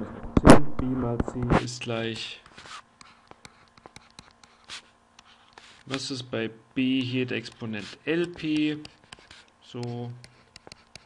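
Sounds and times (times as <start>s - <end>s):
stylus tapping on tablet screen: 3.0s - 5.3s, 7.0s - 11.0s.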